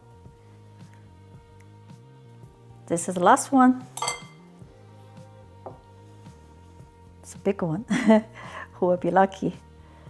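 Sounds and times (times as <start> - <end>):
soft background music: 0.0 - 10.0
chopsticks clinking glass bowl: 4.0 - 4.4.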